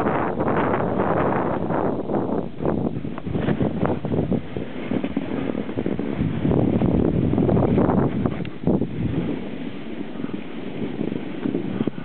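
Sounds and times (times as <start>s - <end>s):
snowboard sliding on packed snow: 0.0s - 12.0s
wind buffeting microphone: 0.0s - 12.0s.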